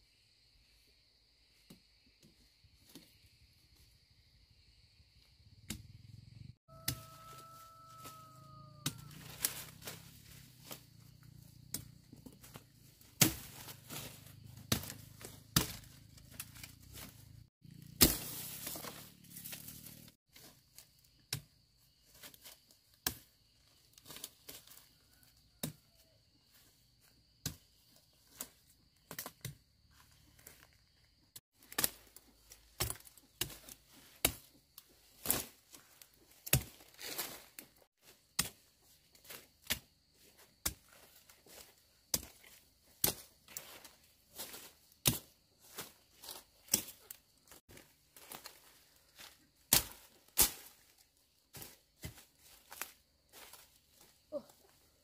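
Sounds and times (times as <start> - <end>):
rustle of leafy stalks: 6.9 - 21.3, 31.5 - 55.0
machete chopping stems: 8.8 - 17.2, 17.8 - 20.0, 31.6 - 34.6, 36.4 - 37.3, 38.3 - 39.9, 44.4 - 45.9, 49.7 - 50.9.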